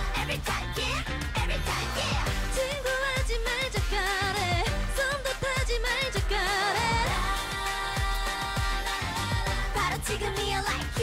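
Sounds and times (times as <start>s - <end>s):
female vocals: 0.0s - 11.0s
steady drum beat: 0.0s - 11.0s.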